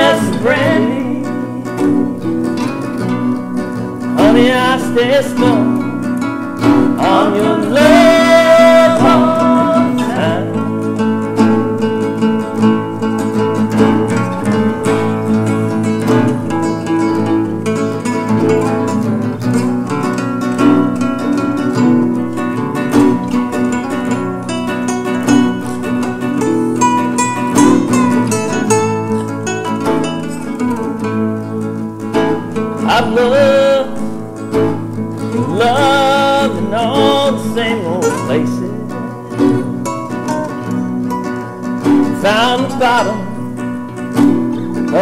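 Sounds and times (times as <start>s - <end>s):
classical guitar playing: 0.0s - 45.0s.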